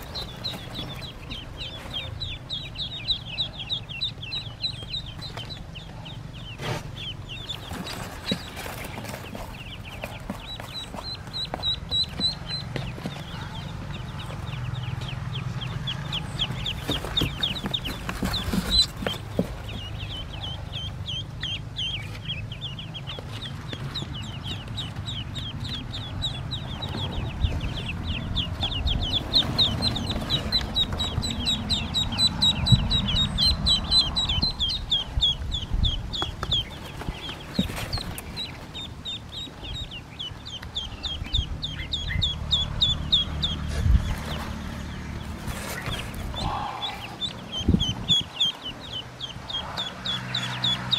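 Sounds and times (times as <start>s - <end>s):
ducklings peeping: 0.0s - 50.9s.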